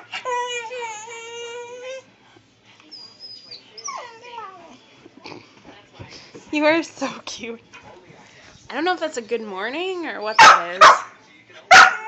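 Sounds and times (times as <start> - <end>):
puppy whimpering: 0.0 - 2.1, 2.9 - 4.8.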